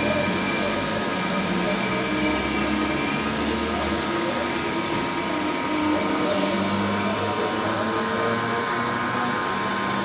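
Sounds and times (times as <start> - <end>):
electric train hum: 0.0 - 10.0.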